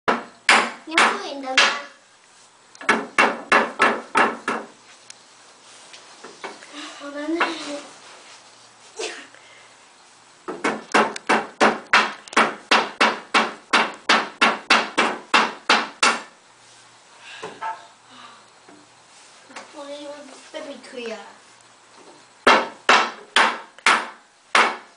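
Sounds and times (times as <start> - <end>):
hammer striking wood: 0.1 - 2.0, 2.8 - 4.7, 10.5 - 16.3, 22.4 - 24.9.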